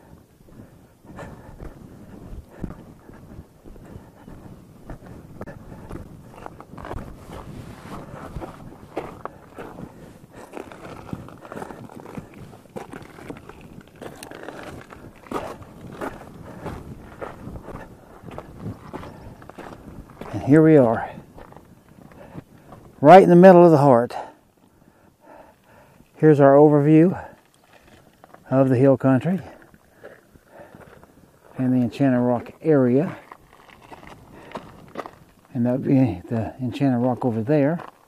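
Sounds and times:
footsteps on rock: 0.0s - 23.1s, 27.1s - 38.0s.

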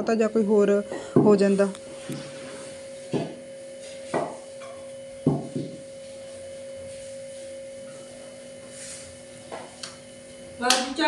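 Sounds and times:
steady low hum: 0.0s - 11.0s
rolling pin knocking on wooden board: 3.1s - 3.4s, 5.2s - 5.8s.

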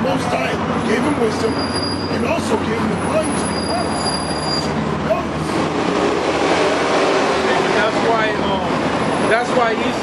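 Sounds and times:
large vehicle passing: 0.0s - 10.0s.

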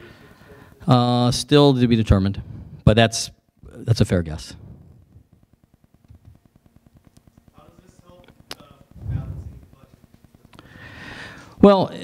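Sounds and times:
low pulsing buzz: 2.0s - 11.6s.

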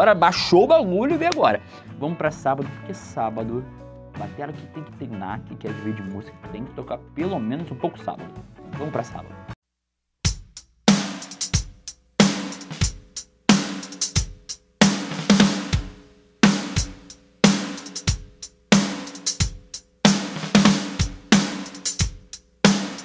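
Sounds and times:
drum kit played with sticks: 10.3s - 23.0s.

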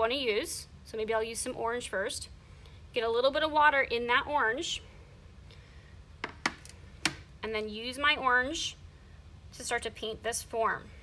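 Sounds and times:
paintbrush tapping plastic tray: 6.2s - 7.2s.

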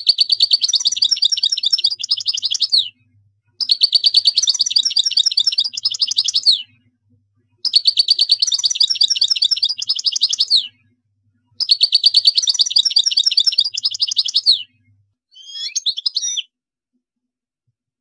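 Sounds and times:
goldfinch singing: 0.0s - 3.0s, 3.6s - 6.8s, 7.6s - 10.8s, 11.6s - 14.7s, 15.3s - 16.5s.

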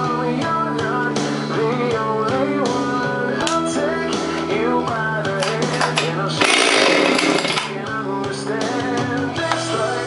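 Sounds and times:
background music: 0.0s - 10.0s
chainsaw revving: 5.8s - 7.8s.

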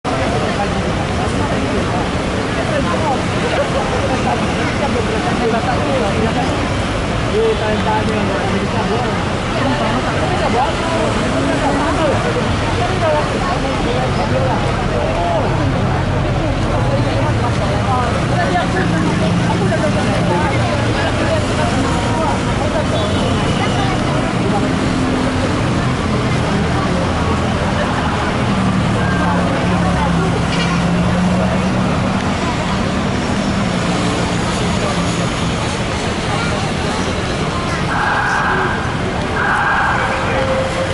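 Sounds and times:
indistinct voices talking: 0.0s - 40.9s
road traffic passing: 0.0s - 40.9s.

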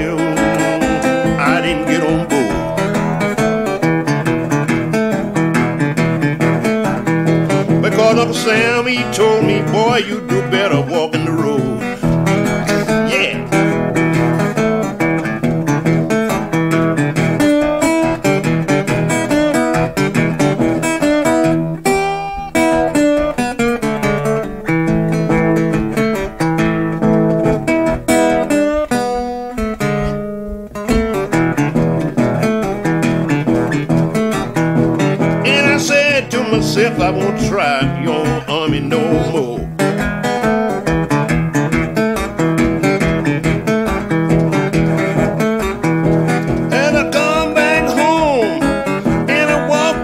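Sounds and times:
acoustic guitar blues picking: 0.0s - 50.0s.

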